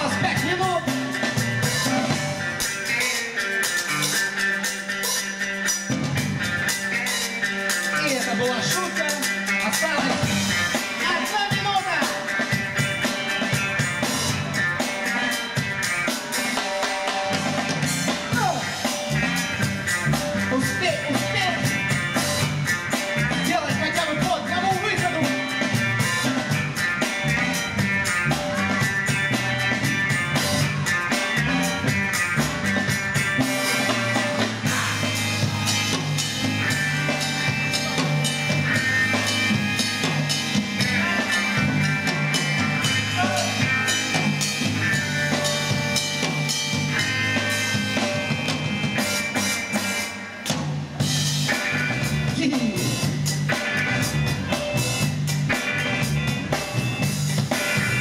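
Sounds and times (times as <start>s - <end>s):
drum kit beat: 0.0s - 58.0s
live band music: 0.0s - 58.0s.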